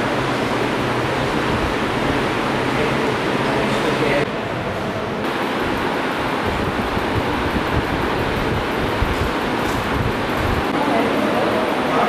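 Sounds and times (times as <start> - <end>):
wind buffeting microphone: 5.6 - 10.8.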